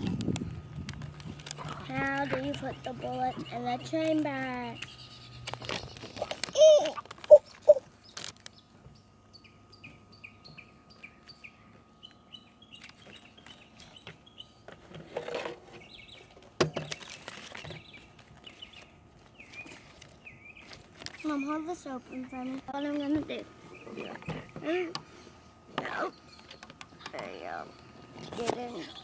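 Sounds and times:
bird chirping: 0:04.6 - 0:06.3, 0:07.3 - 0:14.6
loud bird calls: 0:04.7 - 0:14.6
packaging rustling: 0:16.9 - 0:21.3.

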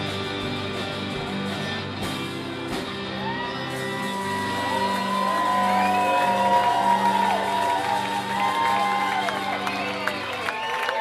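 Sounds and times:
rock band sustained chord: 0:00.0 - 0:10.6
audience whooping and cheering: 0:02.9 - 0:11.0.

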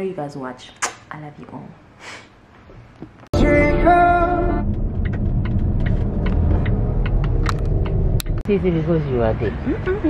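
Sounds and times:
car running low rumble: 0:03.4 - 0:10.0.

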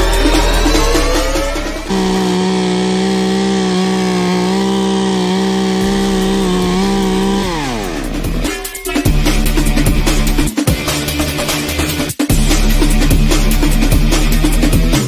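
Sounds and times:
music: 0:00.0 - 0:03.0, 0:05.0 - 0:15.0
chainsaw revving: 0:00.7 - 0:10.6.

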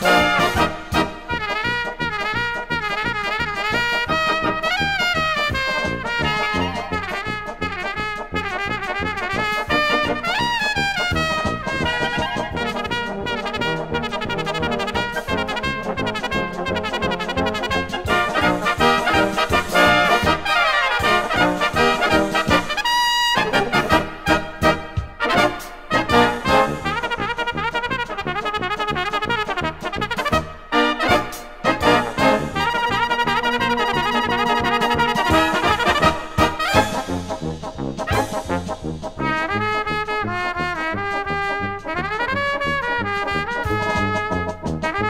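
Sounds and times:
brass band playing: 0:00.0 - 0:45.0
oom-pah bass beat: 0:00.0 - 0:45.0.

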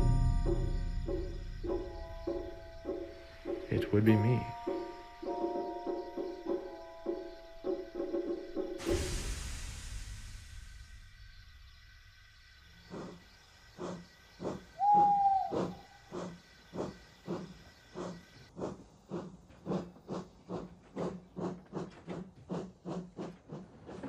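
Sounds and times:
steam locomotive exhaust chuffs: 0:04.7 - 0:24.0.

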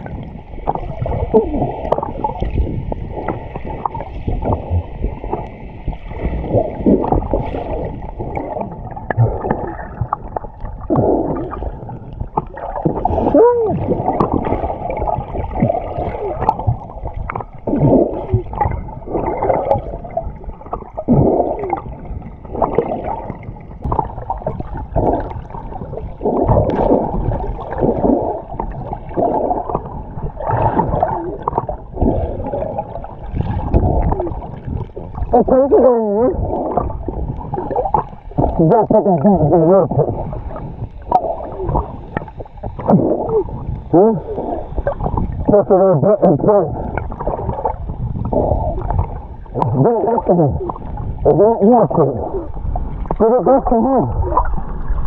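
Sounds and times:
muffled underwater churning and bubbling: 0:00.0 - 0:55.0.

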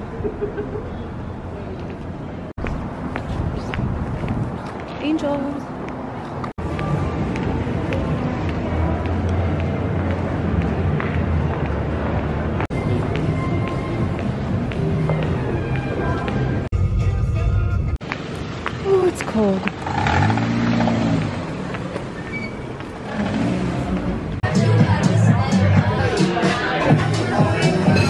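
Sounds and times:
low rumble of mall: 0:00.0 - 0:28.0
traffic noise: 0:00.0 - 0:28.0
footsteps on tiled floor: 0:01.8 - 0:16.7, 0:21.1 - 0:23.1.

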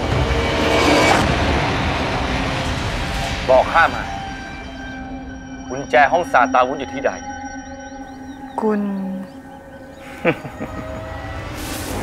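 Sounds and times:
heavy low rumble: 0:00.0 - 0:07.1.

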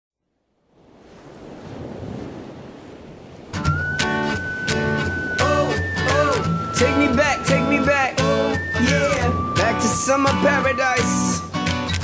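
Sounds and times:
ocean surf: 0:00.5 - 0:12.0
strummed guitar chords: 0:03.6 - 0:12.0
held high sung note: 0:03.8 - 0:11.6.

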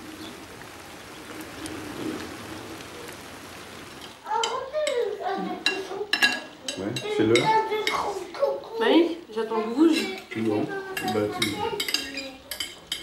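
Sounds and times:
table conversation: 0:04.2 - 0:13.0
cutlery clinking on plates: 0:05.6 - 0:08.1, 0:09.9 - 0:13.0.

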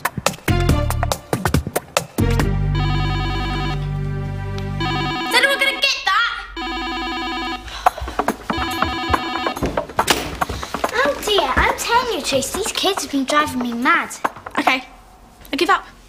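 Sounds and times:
electronic trilling ring: 0:02.8 - 0:03.8, 0:04.8 - 0:05.8, 0:06.6 - 0:07.7, 0:08.5 - 0:09.6.

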